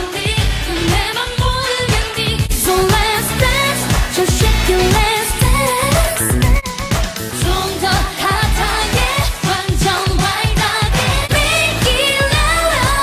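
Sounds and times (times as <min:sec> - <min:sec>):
women singing: 0:00.0 - 0:06.3, 0:07.4 - 0:13.0
heavy bass beat: 0:00.0 - 0:13.0.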